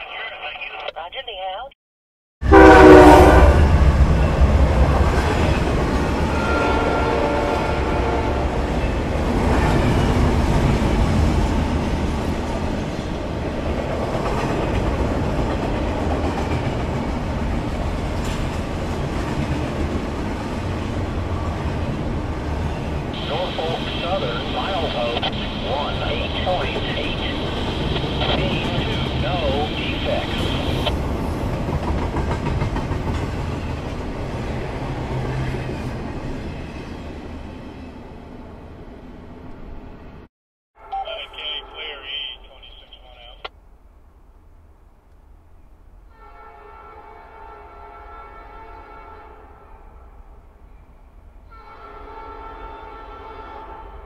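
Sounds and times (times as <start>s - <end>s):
train horn: 2.4s - 3.8s, 6.2s - 8.6s, 46.1s - 50.1s, 51.5s - 54.0s
train rumbling on rails: 2.4s - 40.3s.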